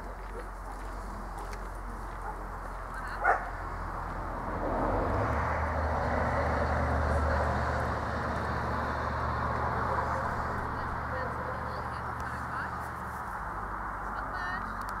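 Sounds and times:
large dog barking: 2.2s - 2.5s, 3.2s - 3.6s.

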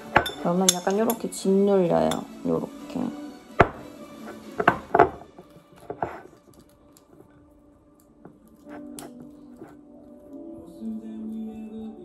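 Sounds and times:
fork clinking against ceramic bowl: 0.1s - 1.3s.

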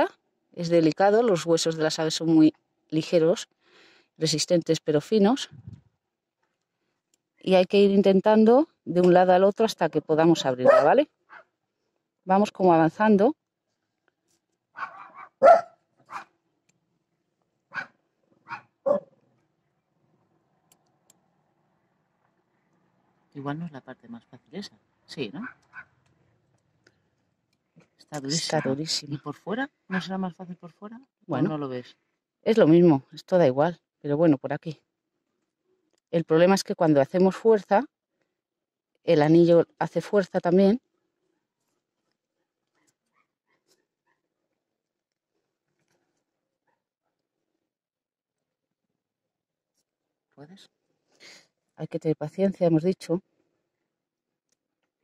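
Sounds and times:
short sharp barks: 10.6s - 11.5s, 14.8s - 16.3s, 17.7s - 19.2s.

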